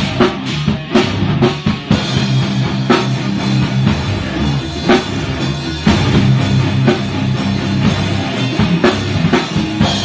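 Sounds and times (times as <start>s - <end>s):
distorted electric guitar riff: 0.0s - 10.0s
drum kit: 0.0s - 10.0s.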